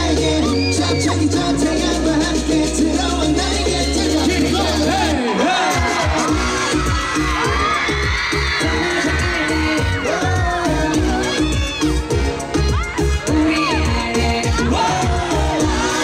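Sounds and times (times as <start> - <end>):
dance pop track over sound system: 0.0 - 16.0.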